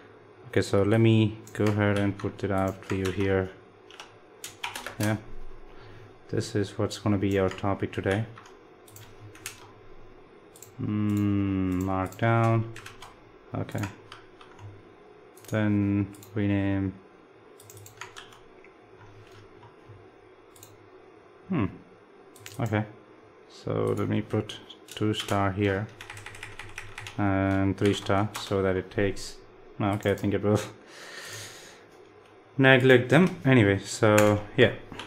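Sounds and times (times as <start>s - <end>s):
low steady hiss: 0.0s - 35.0s
computer clicks: 7.2s - 9.8s, 10.5s - 16.4s, 17.6s - 18.5s, 20.5s - 20.8s, 22.3s - 22.8s.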